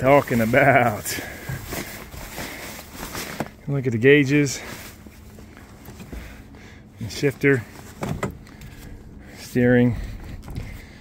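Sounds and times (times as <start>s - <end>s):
cloth cover rustling: 0.0s - 3.6s, 4.6s - 6.1s.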